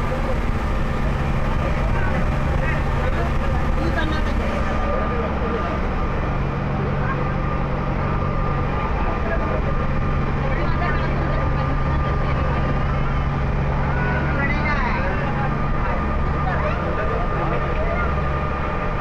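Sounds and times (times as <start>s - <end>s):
ferry engine droning: 0.0s - 19.0s
passengers talking: 0.0s - 19.0s.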